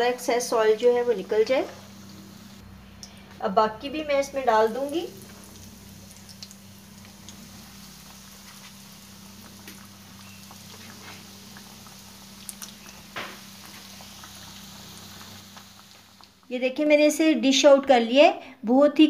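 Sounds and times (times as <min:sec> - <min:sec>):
food sizzling in hot oil: 0:00.0 - 0:16.9
low steady hum: 0:00.0 - 0:17.2
oil popping and crackling: 0:04.2 - 0:16.5.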